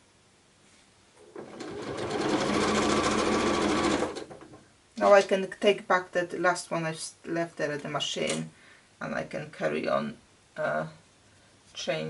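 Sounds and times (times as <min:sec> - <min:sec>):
sewing machine stitching: 0:01.2 - 0:04.6.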